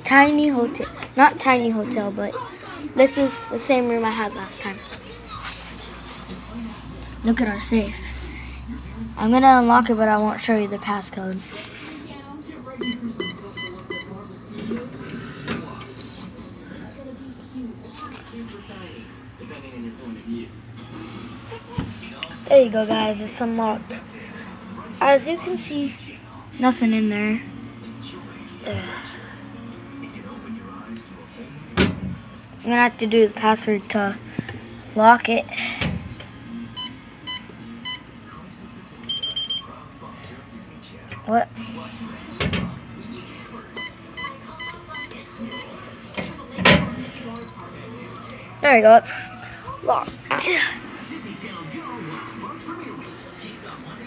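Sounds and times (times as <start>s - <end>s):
keypad beeping: 12.8s - 14.1s.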